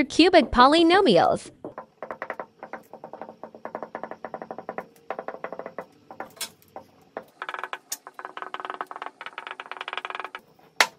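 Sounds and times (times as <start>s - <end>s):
marker squeaking on whiteboard: 1.6s - 10.5s.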